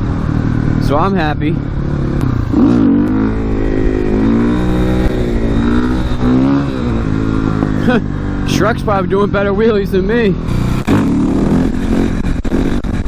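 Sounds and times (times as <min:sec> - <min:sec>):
wind rush: 0:00.0 - 0:09.6
motorcycle engine revving: 0:00.0 - 0:13.0.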